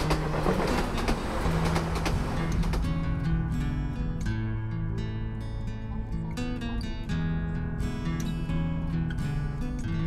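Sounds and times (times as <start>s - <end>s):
sharp clacks: 0.0s - 3.0s
wheels clattering over rail joints: 0.0s - 3.3s
train running on rails: 0.0s - 3.5s.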